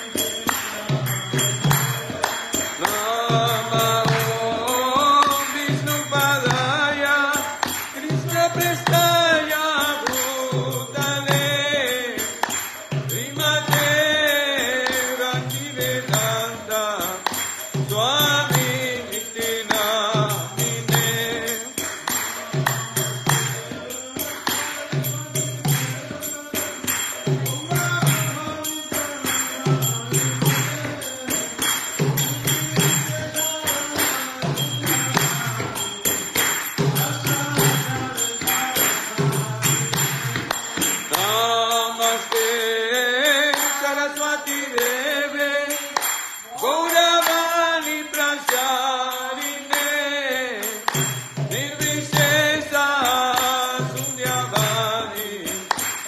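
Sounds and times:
metallic jingling of bells: 0:00.0 - 0:56.0
voices chanting a mantra: 0:00.0 - 0:56.0.

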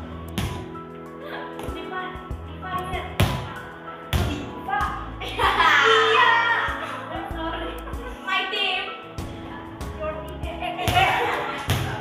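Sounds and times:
background music: 0:00.0 - 0:12.0
girls calling out: 0:04.8 - 0:07.1.

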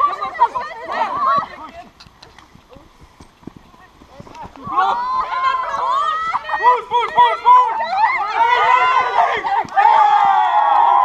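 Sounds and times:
footsteps running on grass: 0:00.0 - 0:10.9.

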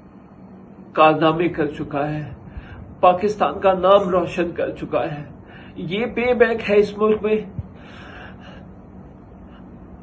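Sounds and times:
low background hiss: 0:00.0 - 0:10.0
man breathing softly: 0:02.4 - 0:02.9, 0:05.4 - 0:05.8, 0:07.6 - 0:08.8.

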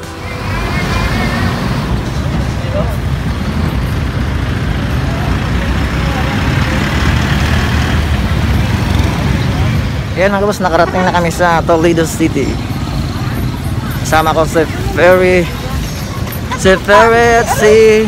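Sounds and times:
bus engine rumbling: 0:00.0 - 0:18.0.

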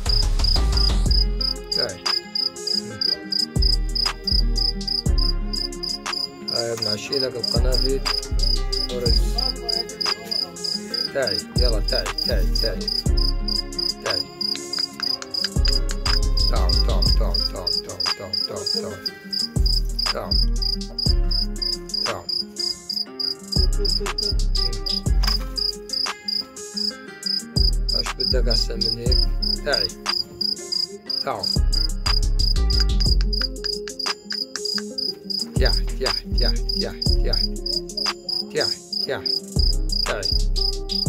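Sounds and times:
music with heavy bass line: 0:00.0 - 0:02.0, 0:03.3 - 0:06.3, 0:07.5 - 0:10.0, 0:11.6 - 0:14.1, 0:15.5 - 0:17.8, 0:19.6 - 0:22.4, 0:23.5 - 0:26.1, 0:27.6 - 0:30.0, 0:31.6 - 0:34.8, 0:35.6 - 0:38.4, 0:39.6 - 0:41.0
cricket chirping: 0:00.0 - 0:11.5, 0:12.2 - 0:41.0.

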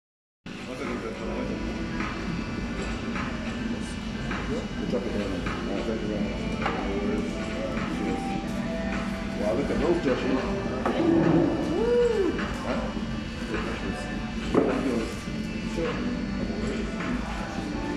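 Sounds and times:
music playing: 0:00.5 - 0:17.9
indistinct voices: 0:00.7 - 0:17.9.

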